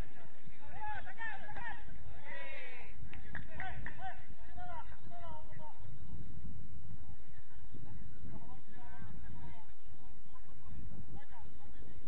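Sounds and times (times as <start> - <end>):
players shouting: 0.0 - 5.8.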